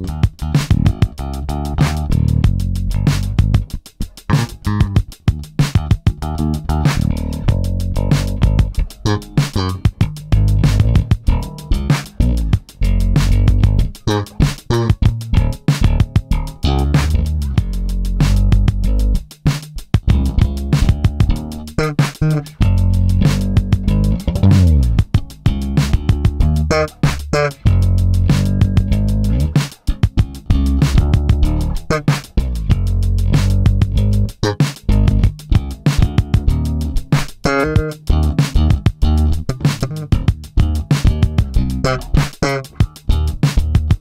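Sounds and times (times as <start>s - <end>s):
drum machine beat: 0.0s - 44.0s
electric bass funk line: 0.0s - 44.0s
hi-hat ticks: 0.0s - 44.0s.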